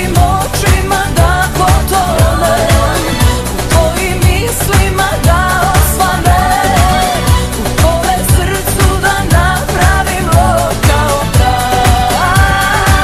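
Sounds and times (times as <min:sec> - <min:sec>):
kick drum: 0:00.0 - 0:13.0
pop song with dance beat: 0:00.0 - 0:13.0.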